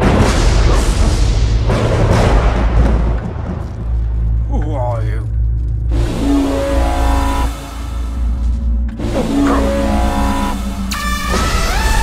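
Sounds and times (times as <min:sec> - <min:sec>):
heavy bass drone: 0:00.0 - 0:12.0.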